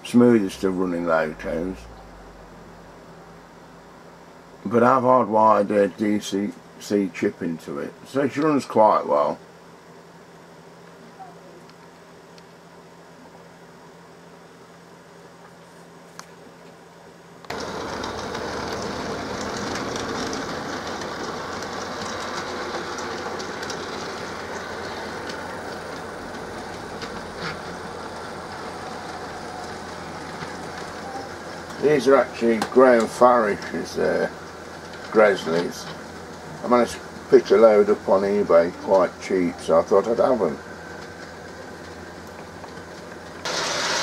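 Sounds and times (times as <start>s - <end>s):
model train running on track: 0.0s - 2.6s, 4.7s - 9.4s, 17.5s - 44.0s
faint steady hum: 0.0s - 43.5s.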